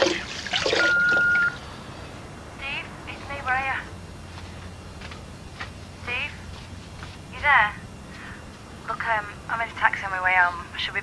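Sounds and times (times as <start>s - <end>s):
steady ringing tone: 0.7s - 2.2s.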